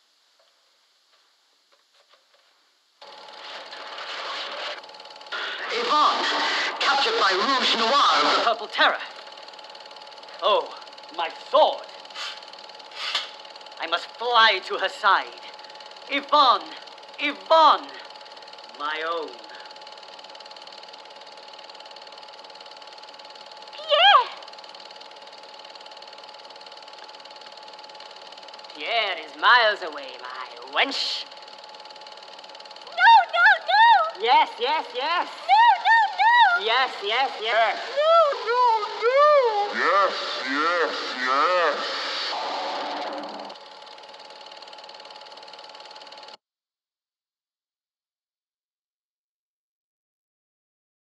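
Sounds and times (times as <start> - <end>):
mechanical whirring hum: 0.0 - 46.4
film projector clattering: 3.0 - 46.4.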